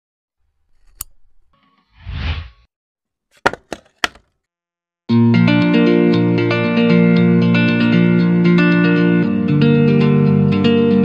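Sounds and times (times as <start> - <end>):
whoosh: 1.9 - 2.7.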